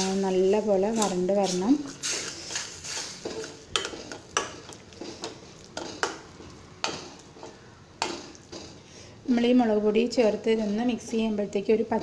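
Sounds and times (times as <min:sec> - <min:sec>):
spoon scraping steel pan: 0:00.0 - 0:08.8.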